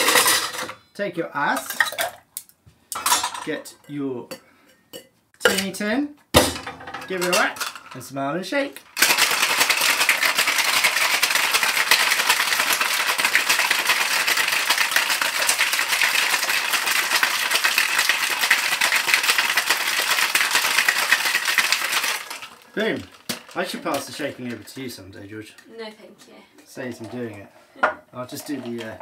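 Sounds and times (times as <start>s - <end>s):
ice rattling in cocktail shaker: 7.2s - 8.0s, 8.9s - 24.9s, 28.3s - 29.0s.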